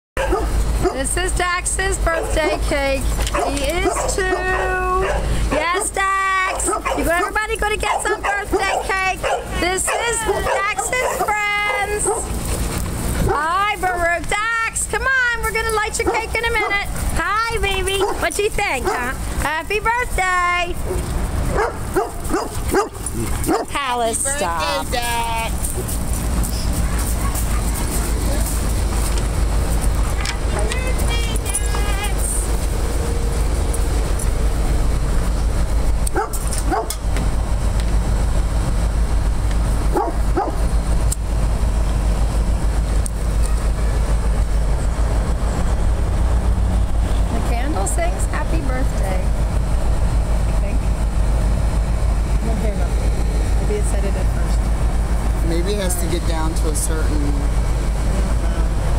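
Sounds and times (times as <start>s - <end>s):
dogs whining and yipping: 0.2s - 1.0s, 2.2s - 12.5s, 20.8s - 23.8s, 25.6s - 29.2s
steady low rumble: 0.2s - 58.9s.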